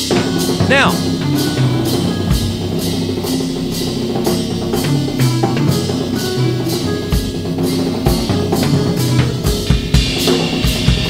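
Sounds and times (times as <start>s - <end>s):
drum kit played with soft mallets: 4.8s - 11.0s.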